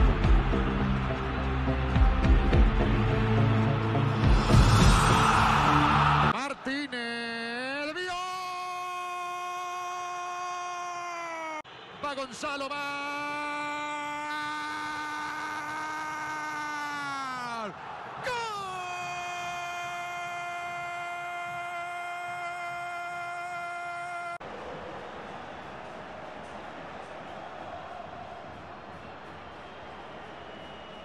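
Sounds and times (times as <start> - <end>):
stadium crowd noise: 0.0 - 31.0.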